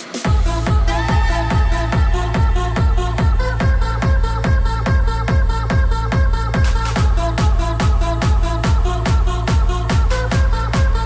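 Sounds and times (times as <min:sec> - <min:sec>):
techno kick drum: 0:00.0 - 0:11.0.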